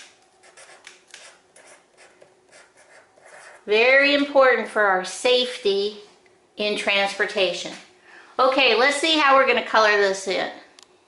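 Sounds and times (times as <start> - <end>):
marker writing on paper: 0.4 - 3.7.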